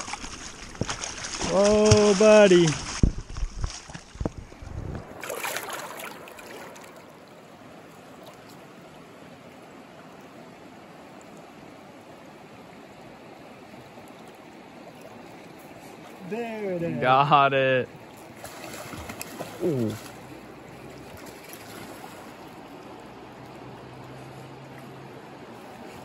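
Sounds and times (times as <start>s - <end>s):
river water flowing over rocks: 0.0s - 26.0s.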